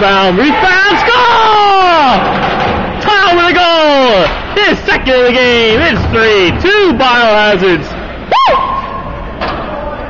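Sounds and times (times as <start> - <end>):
man yelling excitedly: 0.0 - 2.2.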